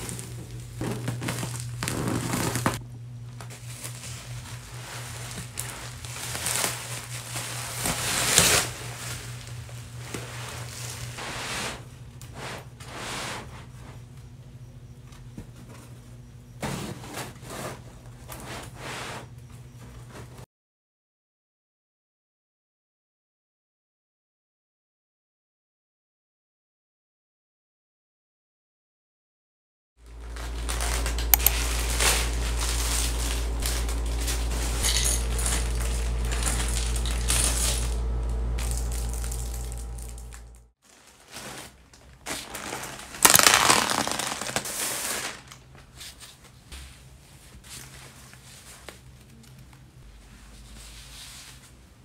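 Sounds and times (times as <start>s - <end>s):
plastic bag crinkling: 0.0s - 2.8s, 3.4s - 11.2s, 30.0s - 45.8s
rugs dragged on floor: 0.0s - 2.8s, 3.6s - 14.0s, 16.6s - 19.3s, 30.1s - 45.4s
steady low hum: 0.0s - 20.4s, 30.0s - 40.8s
metal parts clinking and rattling: 30.8s - 38.0s.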